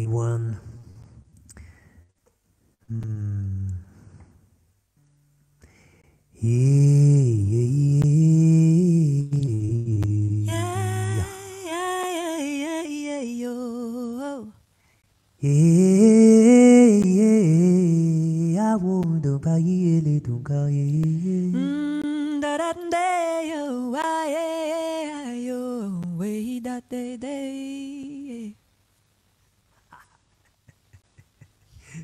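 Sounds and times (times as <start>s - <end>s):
low voice singing wordlessly: 2.9s - 3.9s, 6.4s - 14.5s, 15.4s - 28.6s
higher voice singing: 6.4s - 14.5s.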